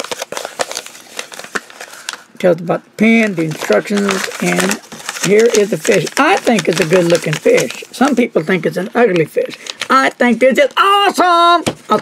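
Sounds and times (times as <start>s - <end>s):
paper crackling and rustling: 0.0s - 12.0s.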